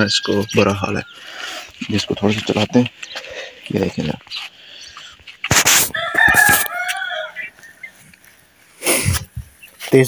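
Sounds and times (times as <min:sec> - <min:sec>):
rooster crowing: 0:05.9 - 0:07.9.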